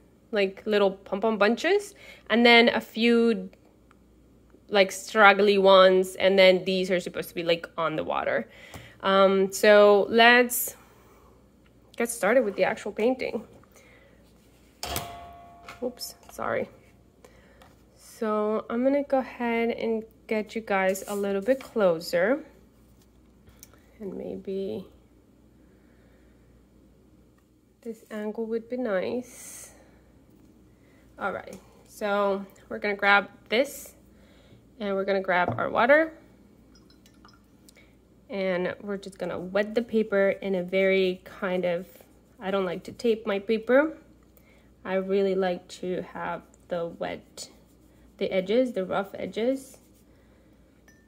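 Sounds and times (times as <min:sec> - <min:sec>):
ringing knock on hard object: 0:14.8 - 0:16.3
water dripping: 0:36.7 - 0:37.8.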